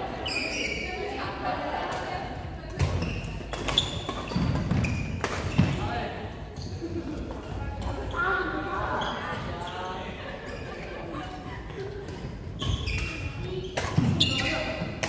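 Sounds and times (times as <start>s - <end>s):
rackets striking shuttlecock: 2.7s - 5.8s, 12.1s - 15.0s.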